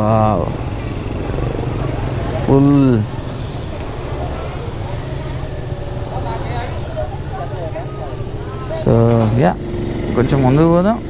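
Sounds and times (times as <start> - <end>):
faint voices: 0.0 - 11.0
scooter engine rumbling: 0.0 - 11.0.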